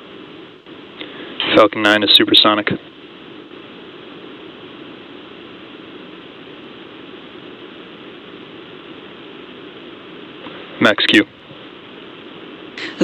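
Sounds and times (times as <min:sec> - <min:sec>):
commentary: 0:12.8 - 0:13.0.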